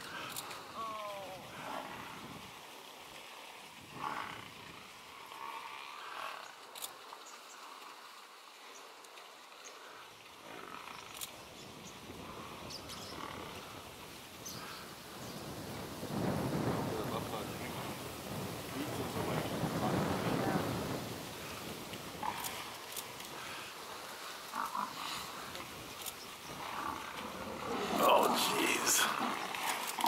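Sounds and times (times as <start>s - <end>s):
lion calls: 26.5s - 30.0s.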